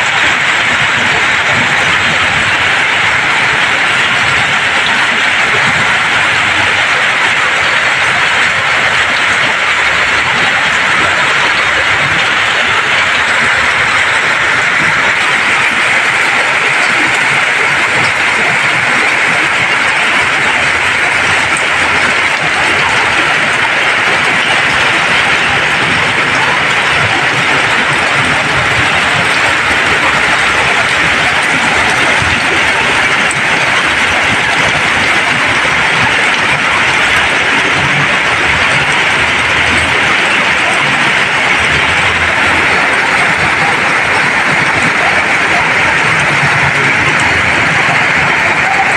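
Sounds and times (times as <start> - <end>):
heavy rain on flooded street: 0.0 - 48.9
vehicles churning through floodwater: 0.0 - 48.9.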